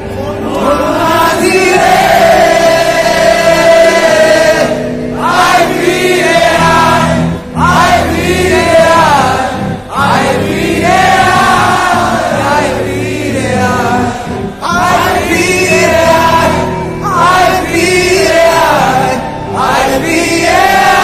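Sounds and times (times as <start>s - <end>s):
crowd singing along: 0.0s - 21.0s.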